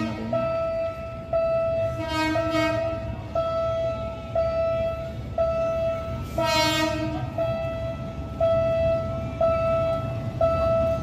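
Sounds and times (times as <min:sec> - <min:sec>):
train horn blasts: 0:00.0 - 0:01.0, 0:01.6 - 0:08.0
level-crossing warning signal: 0:00.0 - 0:11.0.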